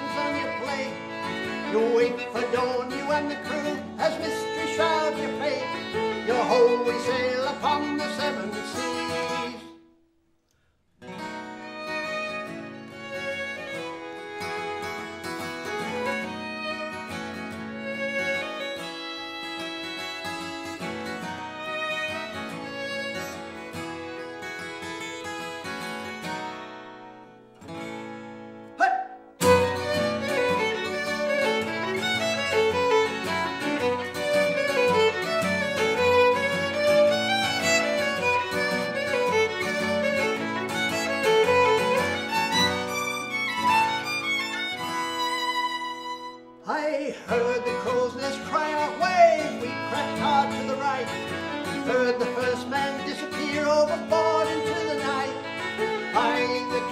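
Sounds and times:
violin playing melody: 0.0 - 9.7, 11.1 - 26.7, 29.4 - 46.6, 47.3 - 56.9
strummed acoustic guitar: 0.0 - 9.9, 11.0 - 56.9.

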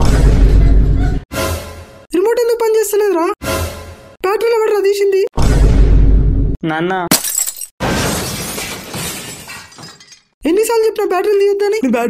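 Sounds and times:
glass shattering: 7.1 - 10.4.

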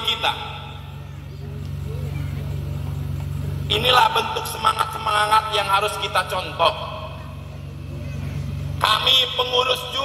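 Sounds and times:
faint distant voices: 0.0 - 5.0, 7.0 - 9.8
low engine hum: 0.0 - 10.0.

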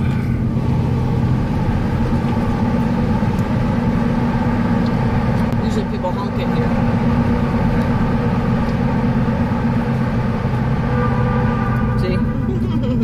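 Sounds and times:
car road and engine drone: 0.0 - 13.0.

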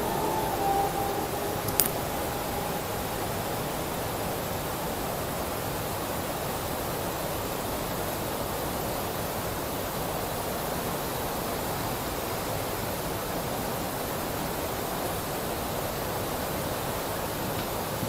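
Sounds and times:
rushing water: 0.0 - 18.0.

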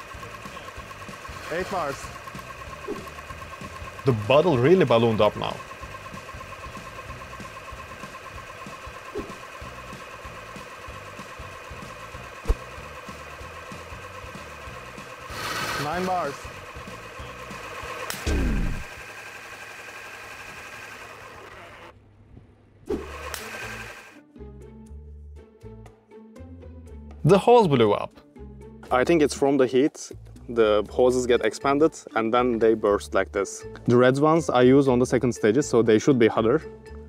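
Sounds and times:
air compressor whining: 0.0 - 22.0, 22.9 - 24.2.

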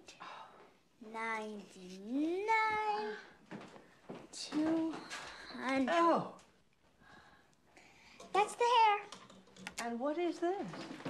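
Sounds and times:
person speaking: 1.0 - 3.3.

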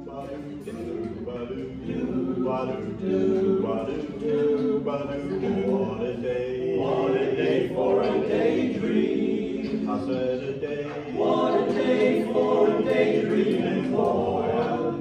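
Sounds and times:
male a cappella group singing: 0.0 - 15.0.

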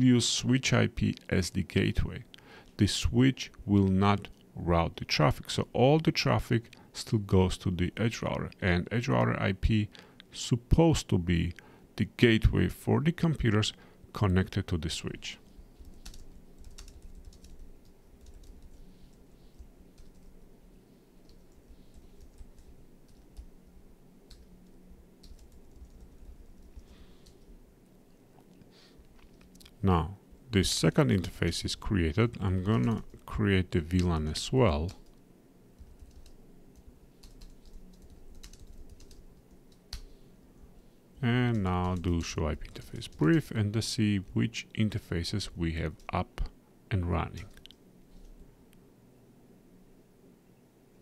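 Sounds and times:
computer keyboard typing: 15.8 - 18.8, 19.6 - 20.3, 21.2 - 23.5, 24.3 - 24.5, 25.2 - 27.4, 35.8 - 40.1, 41.5 - 43.5.

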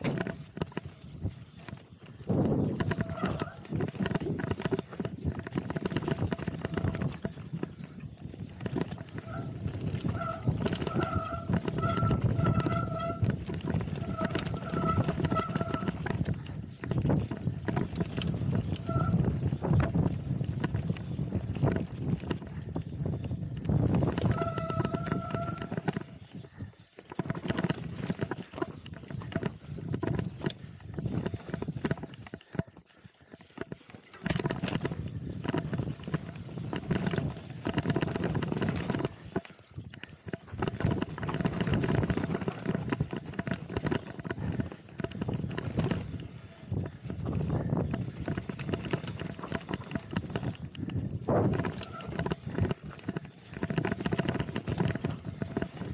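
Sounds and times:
bike chain slap and frame rattle: 0.0 - 55.9
wind noise on microphone: 0.0 - 55.9.

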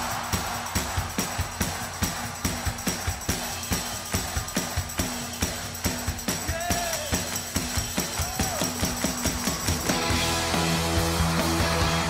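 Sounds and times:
hand percussion beats: 0.0 - 12.0.

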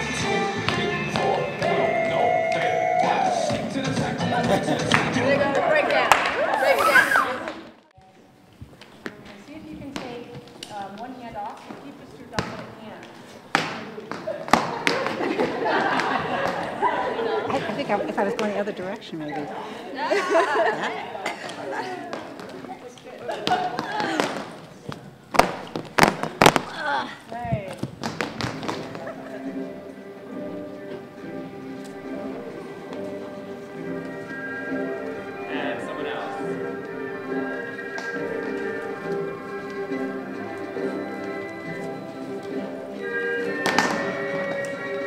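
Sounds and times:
recorded music: 0.0 - 6.6, 28.0 - 45.0
voices and laughter: 4.1 - 7.5, 14.3 - 24.6, 28.8 - 29.9
low chatter: 4.2 - 27.8
hula hoops striking floor: 8.6 - 16.8, 22.1 - 29.2, 43.5 - 45.0.

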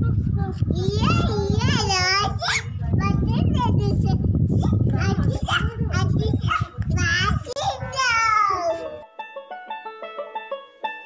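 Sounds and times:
steady low rumble: 0.0 - 8.0
children squealing and babbling: 0.2 - 4.1, 4.7 - 9.0.

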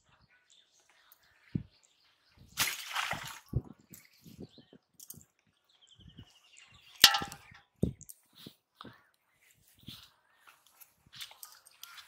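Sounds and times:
metal basin clanging: 7.0 - 7.6.

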